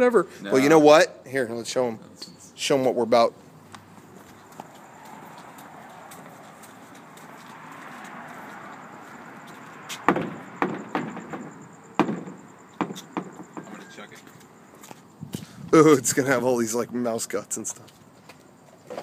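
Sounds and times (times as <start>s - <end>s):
footsteps on hard pavement: 3.4s - 15.7s.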